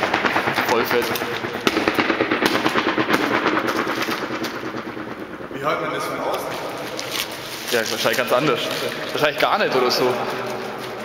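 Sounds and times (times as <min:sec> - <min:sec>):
rapid echoing sharp cracks: 0:00.0 - 0:11.0.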